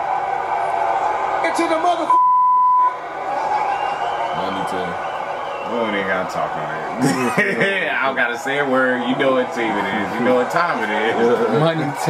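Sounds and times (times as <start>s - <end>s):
censor bleep: 2.1s - 3.0s.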